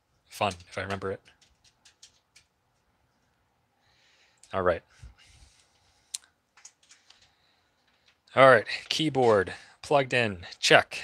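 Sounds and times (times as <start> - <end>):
faint key clicks and taps: 0.4 - 3.4, 5.6 - 10.7.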